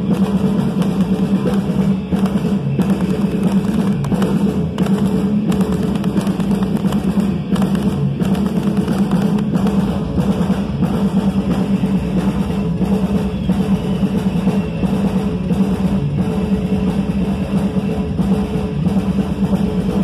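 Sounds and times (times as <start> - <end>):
drum kit: 0.0 - 20.0
electric bass: 0.0 - 20.0.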